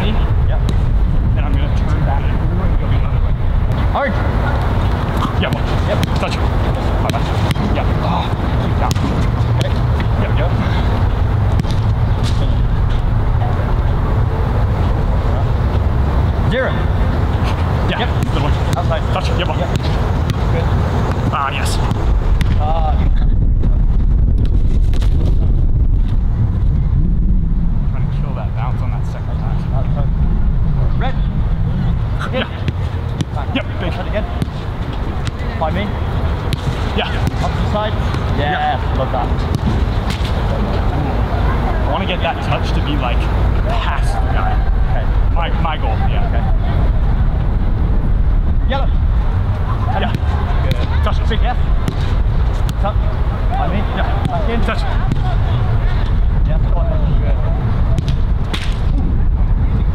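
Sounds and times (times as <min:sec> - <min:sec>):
steady low rumble: 0:00.0 - 0:59.9
football being kicked: 0:07.0 - 0:10.1, 0:11.5 - 0:12.4, 0:18.0 - 0:22.6, 0:58.0 - 0:58.8
distant shouts of players: 0:52.8 - 0:56.0.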